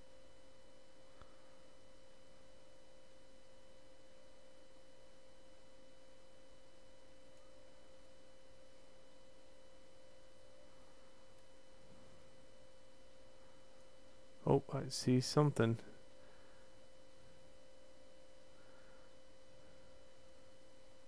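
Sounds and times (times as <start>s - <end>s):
faint steady hum: 0.0s - 21.0s
low hiss: 0.0s - 21.0s.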